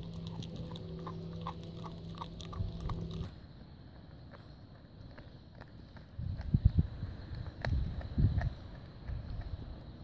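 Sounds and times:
dog chewing meat and bone: 0:00.0 - 0:03.4, 0:04.0 - 0:10.0
steady low hum: 0:00.0 - 0:10.0.

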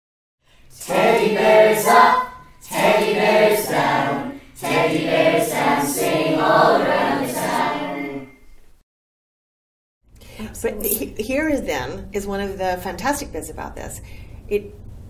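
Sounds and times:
group of voices singing: 0:00.7 - 0:08.4.

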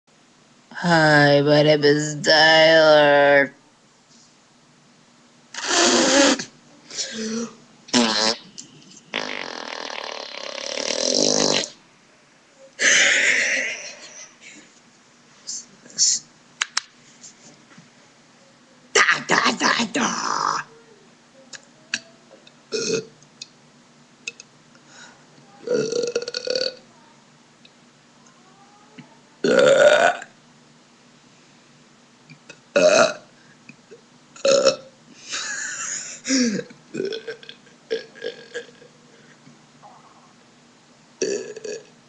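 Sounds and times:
boy blowing raspberries: 0:05.6 - 0:08.5
boy burping: 0:12.8 - 0:14.2, 0:22.8 - 0:23.1, 0:25.6 - 0:26.8, 0:29.4 - 0:30.3, 0:32.8 - 0:33.2, 0:34.4 - 0:34.8, 0:36.3 - 0:38.9, 0:41.2 - 0:41.9.

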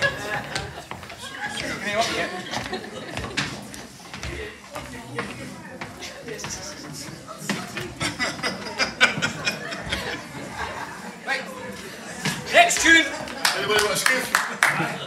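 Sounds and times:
people chattering: 0:00.0 - 0:15.0.

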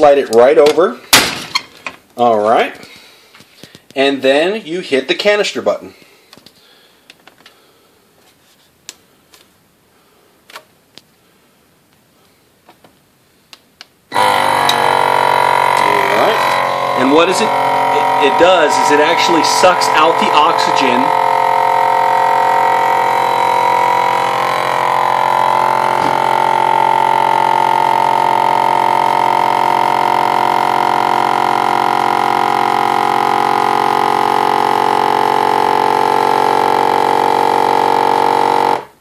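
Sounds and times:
vacuum sealer pump running: 0:14.1 - 0:39.0.

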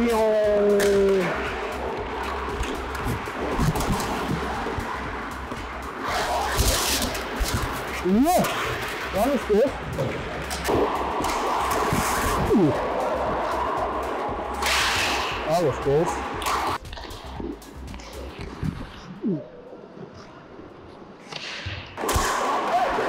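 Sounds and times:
sticks and puck clacking: 0:00.0 - 0:09.0, 0:09.9 - 0:15.4
skates scraping ice: 0:00.8 - 0:09.3, 0:09.9 - 0:15.4.

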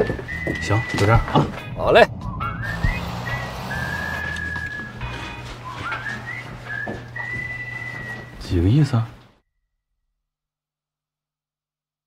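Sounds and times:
person whistling a tune: 0:00.0 - 0:08.4.

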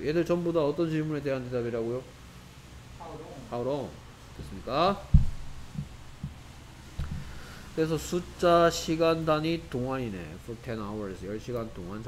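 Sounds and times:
steady low hum: 0:00.0 - 0:12.0
loud low thud: 0:05.0 - 0:06.4
faint low knocks: 0:05.0 - 0:07.4.

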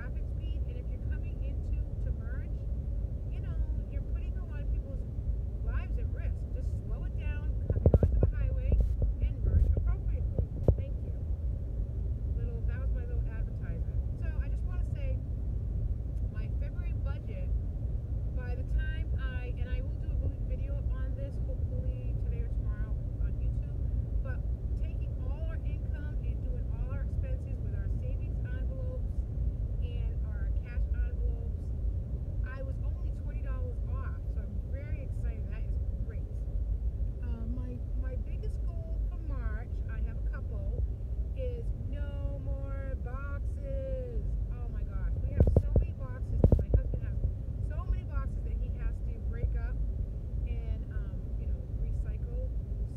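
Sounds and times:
woman talking: 0:00.0 - 0:02.6, 0:03.3 - 0:11.2, 0:12.4 - 0:15.2, 0:16.3 - 0:17.5, 0:18.4 - 0:29.1, 0:29.8 - 0:31.6, 0:32.4 - 0:36.4, 0:37.2 - 0:40.8, 0:41.4 - 0:49.8, 0:50.5 - 0:52.9
car cabin road rumble: 0:00.0 - 0:52.9.

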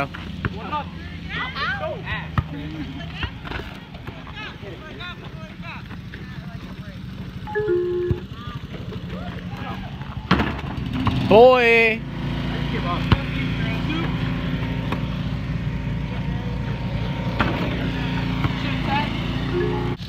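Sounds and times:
people calling out: 0:00.0 - 0:10.3, 0:17.6 - 0:20.0
basketball bouncing: 0:02.3 - 0:04.4, 0:07.5 - 0:08.9, 0:10.0 - 0:11.3, 0:13.0 - 0:13.4, 0:17.3 - 0:18.7.

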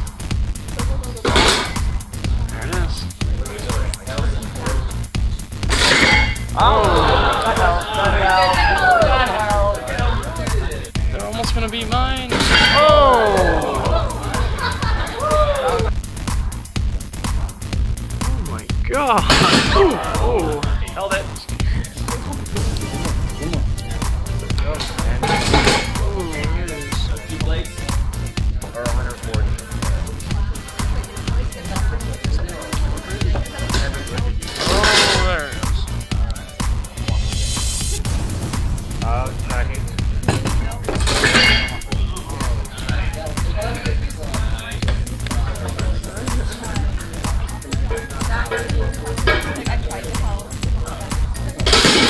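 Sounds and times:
electronic dance music: 0:00.0 - 0:52.0.

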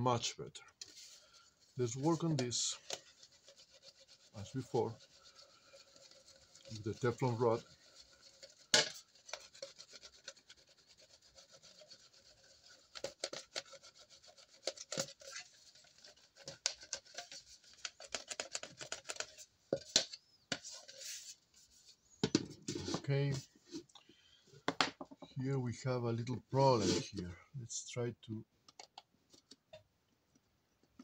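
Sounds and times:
rod scraping metal horn: 0:26.7 - 0:27.2.

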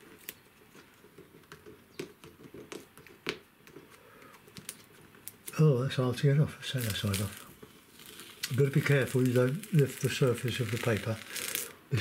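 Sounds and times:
masking tape peeling off paper: 0:04.3 - 0:05.6, 0:06.7 - 0:11.8.

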